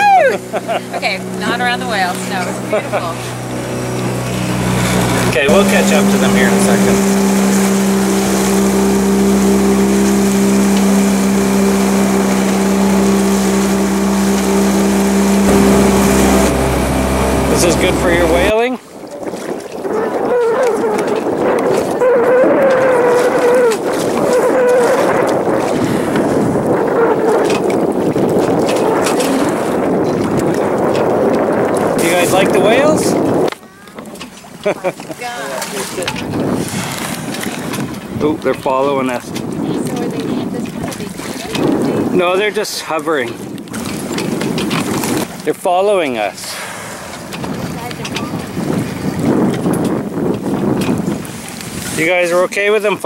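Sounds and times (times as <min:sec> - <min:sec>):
boat motor running: 0:00.0 - 0:53.0
water washing along hull: 0:00.0 - 0:53.0
wind buffeting microphone: 0:00.0 - 0:53.0.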